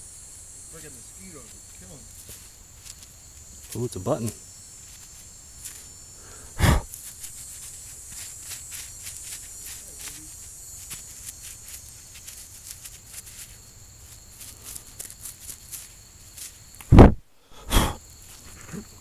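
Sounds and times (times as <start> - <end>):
high insect chirring: 0.0 - 19.0.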